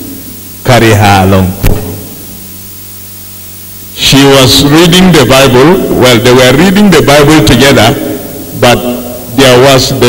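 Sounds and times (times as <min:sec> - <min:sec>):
low electrical hum: 0:00.0 - 0:10.0
steady hiss: 0:00.0 - 0:10.0.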